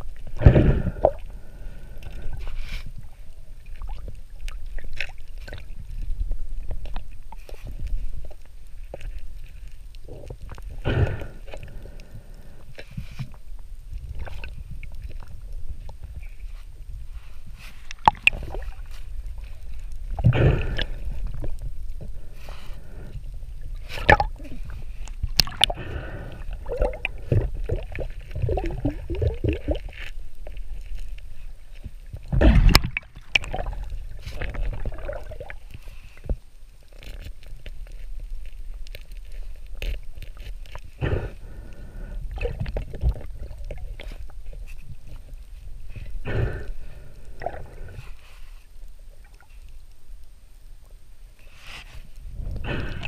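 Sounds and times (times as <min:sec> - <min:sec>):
water sloshing and gurgling: 0:00.0 - 0:50.3
underwater low rumble: 0:00.0 - 0:53.0.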